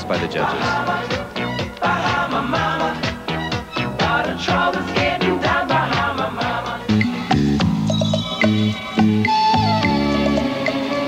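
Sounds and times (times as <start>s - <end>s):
latin ballroom dance music: 0.0s - 11.0s.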